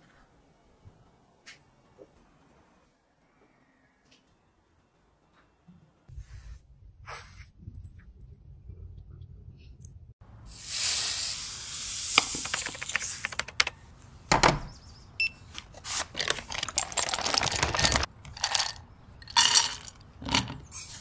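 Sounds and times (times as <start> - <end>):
paper bag rustling: 15.7 - 18.7.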